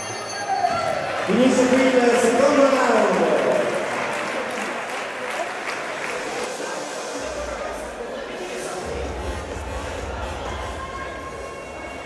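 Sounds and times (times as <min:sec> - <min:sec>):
audience applauding: 0:00.7 - 0:07.2.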